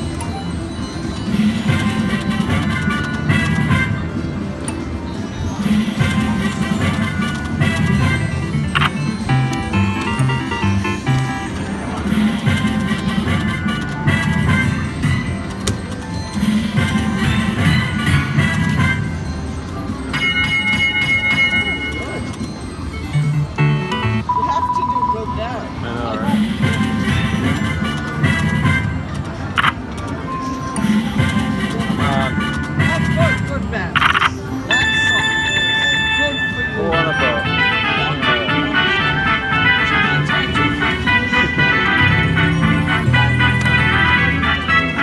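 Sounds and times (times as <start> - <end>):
slot machine two-note tone: 6.0 - 19.4, 20.0 - 26.0, 30.4 - 45.0.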